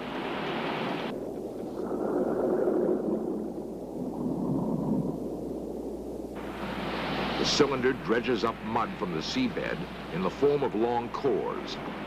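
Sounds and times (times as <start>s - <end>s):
muffled underwater rushing and bubbles: 0.0s - 12.0s
sea water splashing: 0.0s - 12.0s.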